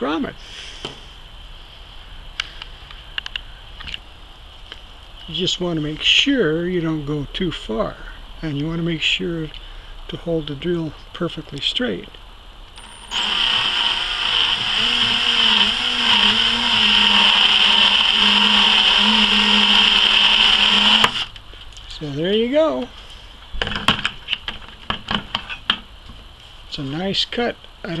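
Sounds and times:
electric drill whining: 0:12.8 - 0:21.3.

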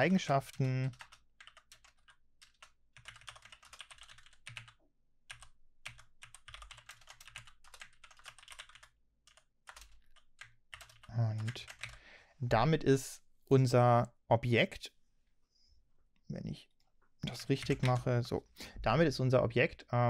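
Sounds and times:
computer keyboard typing: 0:00.5 - 0:12.0, 0:17.2 - 0:18.1.

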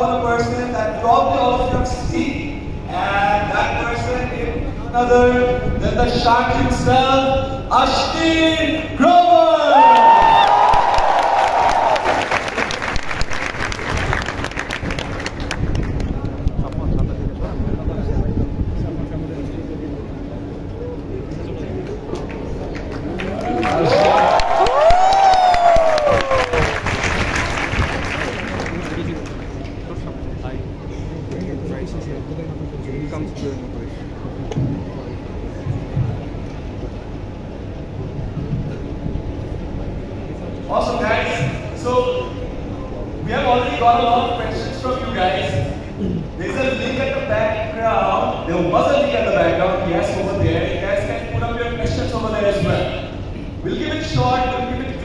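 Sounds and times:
crowded hall rumble: 0:00.0 - 0:55.0
audience applauding: 0:09.8 - 0:16.6, 0:22.7 - 0:29.6.

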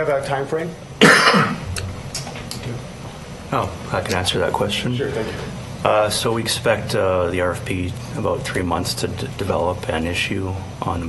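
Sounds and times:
person coughing: 0:01.0 - 0:01.8.

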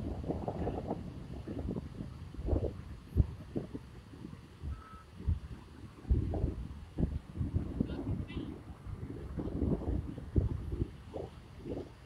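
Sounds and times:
wind buffeting microphone: 0:00.0 - 0:12.0
faint steady tone: 0:01.8 - 0:06.0.

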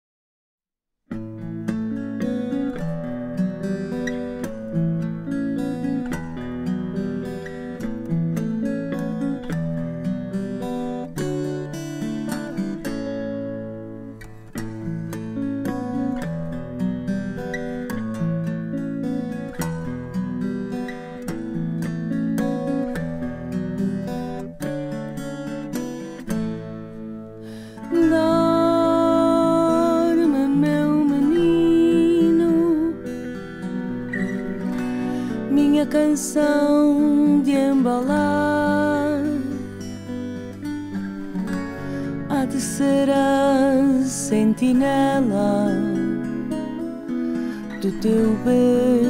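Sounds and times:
acoustic guitar plucking: 0:01.1 - 0:49.0.

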